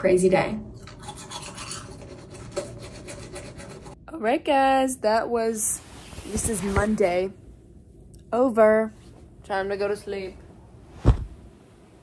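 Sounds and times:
toothbrush scrubbing teeth: 0:00.8 - 0:04.0.

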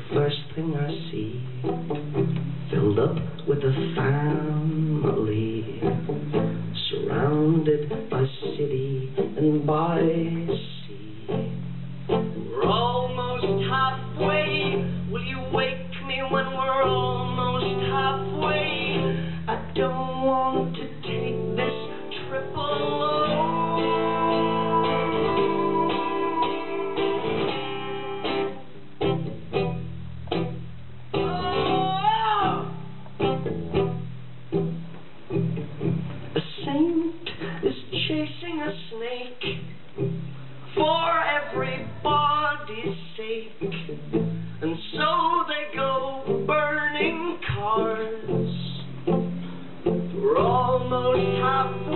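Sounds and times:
man singing: 0:00.0 - 0:02.0, 0:02.7 - 0:11.6, 0:12.4 - 0:27.4, 0:31.2 - 0:32.9, 0:36.4 - 0:39.8, 0:40.7 - 0:44.0, 0:44.6 - 0:49.1, 0:50.1 - 0:51.9
acoustic guitar strummed: 0:00.0 - 0:51.9.

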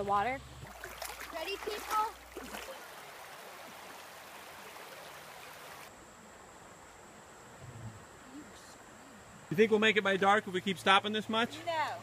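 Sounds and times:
river water running over rocks: 0:00.0 - 0:06.0.

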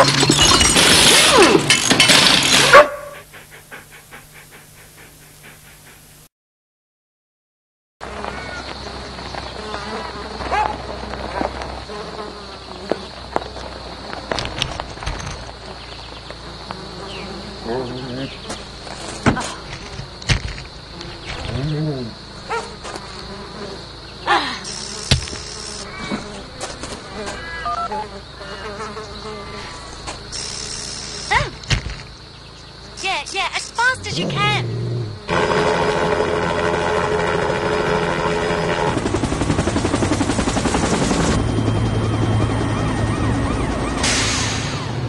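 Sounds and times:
high insect buzz: 0:08.0 - 0:39.1
electronic beeps: 0:27.6 - 0:28.0.

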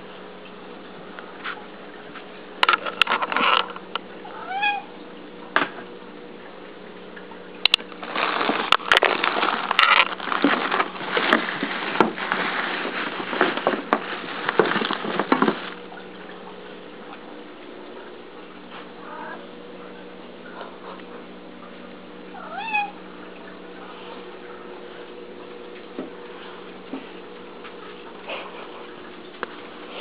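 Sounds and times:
cat meowing: 0:04.3 - 0:04.9, 0:22.4 - 0:23.0
plastic bags rustling: 0:07.8 - 0:16.5.

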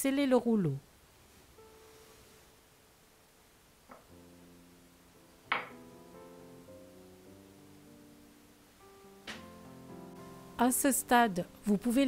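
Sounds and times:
soft instrumental background music: 0:01.6 - 0:02.6, 0:03.9 - 0:12.0.

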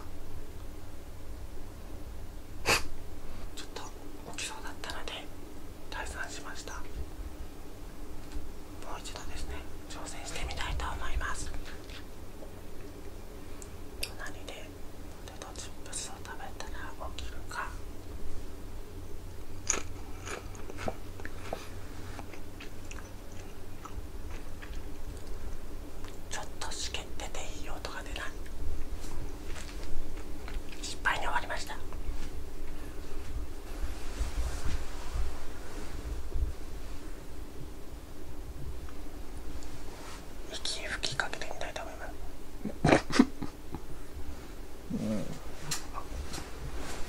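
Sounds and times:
faint low hum: 0:00.0 - 0:47.0
person whispering: 0:03.6 - 0:05.3, 0:05.9 - 0:06.9, 0:08.8 - 0:11.8, 0:14.1 - 0:17.8, 0:26.3 - 0:28.4, 0:30.8 - 0:31.9, 0:40.5 - 0:42.2.

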